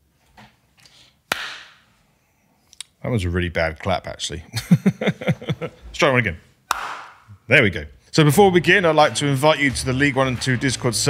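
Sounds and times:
hand clap: 1.3s - 1.8s, 6.7s - 7.3s.

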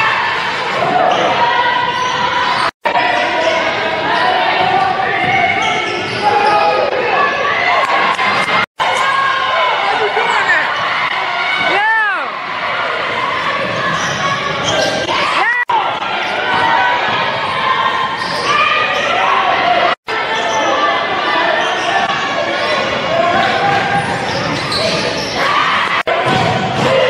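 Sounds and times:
crowd voices echoing: 0.0s - 27.0s.

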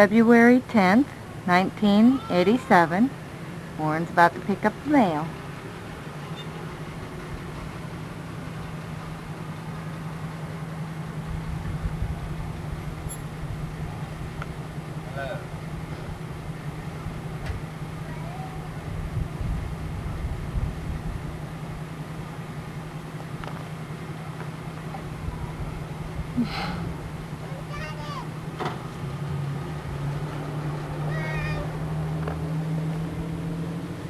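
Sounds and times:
steady low hum: 0.0s - 30.2s
vehicle engine rumble: 0.0s - 34.0s.

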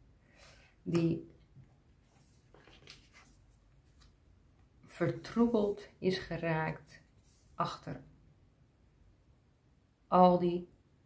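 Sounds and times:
cards sliding on cloth: 7.2s - 7.6s.

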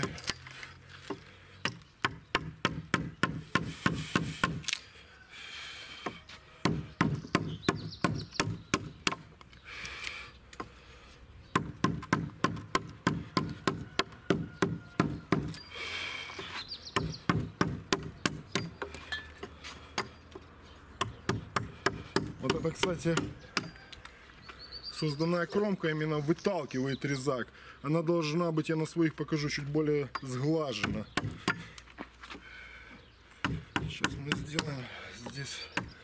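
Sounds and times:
mallet striking gouge into wood: 1.6s - 4.7s, 6.6s - 9.3s, 11.5s - 15.6s, 17.0s - 19.0s, 21.0s - 23.8s, 30.8s - 31.7s.

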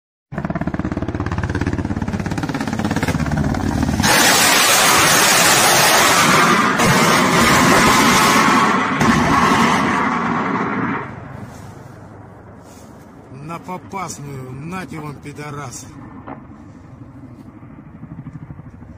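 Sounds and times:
helicopter rotor beat: 0.3s - 18.9s
harsh rushing noise: 0.4s - 14.0s.

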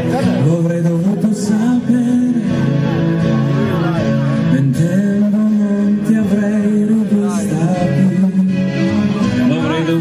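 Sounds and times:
acoustic guitar: 0.0s - 10.0s
man singing into microphone: 0.0s - 10.0s.

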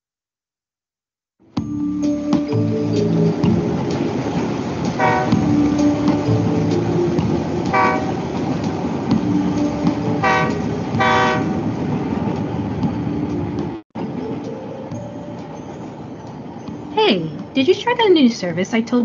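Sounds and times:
cartoon train rolling rumble: 2.0s - 19.0s
train whistle toots: 5.0s - 5.5s, 7.7s - 8.2s, 10.2s - 11.6s.

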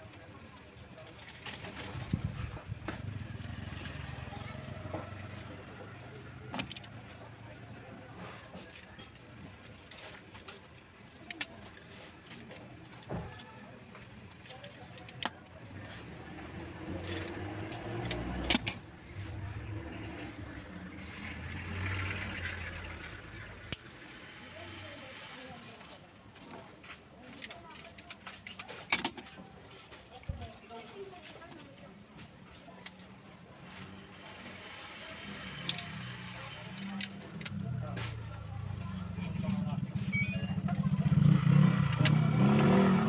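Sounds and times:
motor vehicles passing: 1.8s - 9.0s, 15.6s - 25.7s, 33.6s - 43.0s.

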